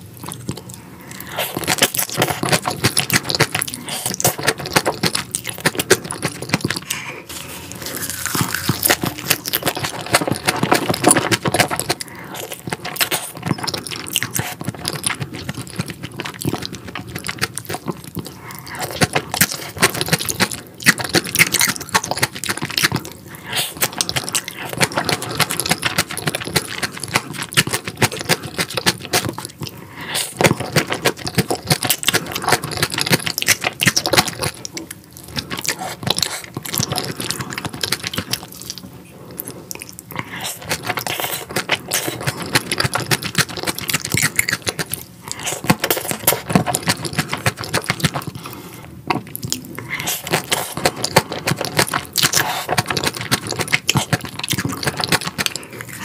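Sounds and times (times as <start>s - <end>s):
wet chewing and crunching: 0.0s - 56.0s.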